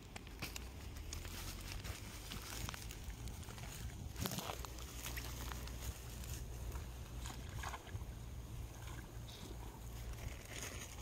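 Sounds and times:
wind rumbling on microphone: 0.0 - 11.0
faint rustles: 0.1 - 8.0.

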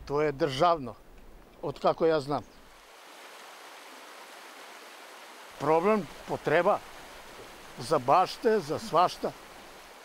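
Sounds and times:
stream rushing over rocks: 2.6 - 10.0.

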